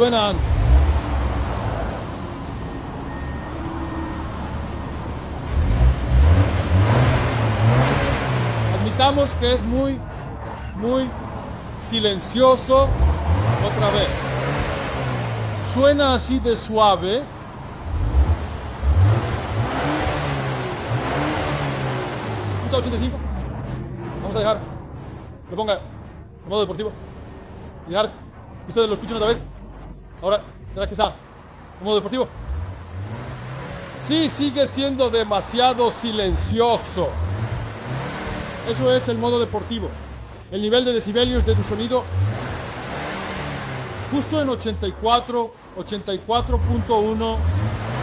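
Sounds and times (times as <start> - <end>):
car engine idling and revving: 0.0 - 48.0.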